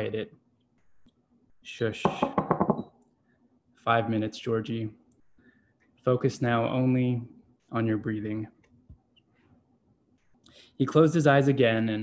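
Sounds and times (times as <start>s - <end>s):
man reading aloud: 6.1s - 8.6s, 10.8s - 12.0s.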